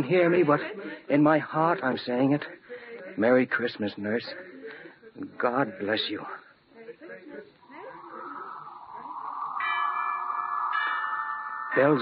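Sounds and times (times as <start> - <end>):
bells ringing: 9.5 - 12.0.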